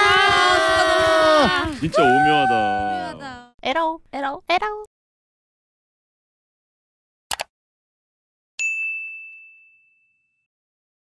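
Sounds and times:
notification bell ding: 0:08.6 - 0:10.5.

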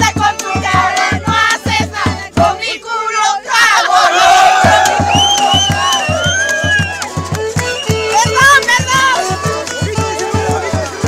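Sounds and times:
crowd singing: 0:00.0 - 0:07.1, 0:09.3 - 0:11.0
long collective shout: 0:03.2 - 0:07.0.

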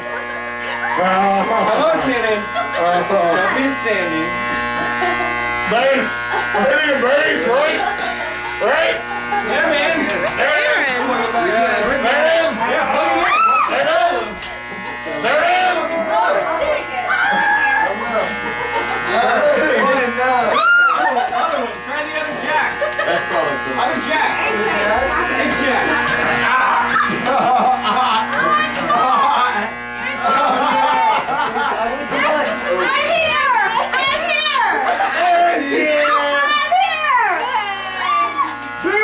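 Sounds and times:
electronic buzzing drone: 0:00.0 - 0:39.0
people shouting: 0:12.9 - 0:14.0, 0:16.6 - 0:18.1, 0:20.5 - 0:21.2, 0:26.2 - 0:27.4, 0:35.7 - 0:39.0.

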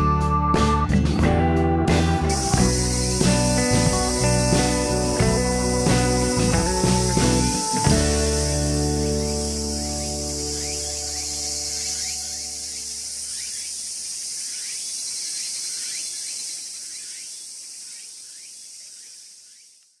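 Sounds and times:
background music low notes: 0:00.0 - 0:12.6
high insect drone: 0:02.2 - 0:20.0
short rising insect chirps: 0:02.3 - 0:19.9.

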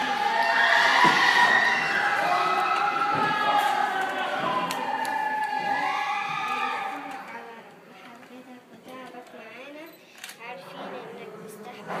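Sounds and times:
children shouting and cheering: 0:00.0 - 0:07.6.

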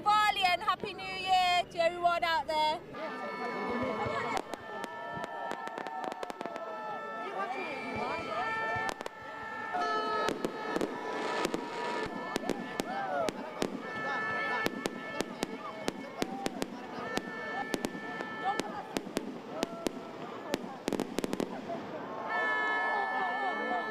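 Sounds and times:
fireworks bangs and crackles: 0:03.7 - 0:22.6.

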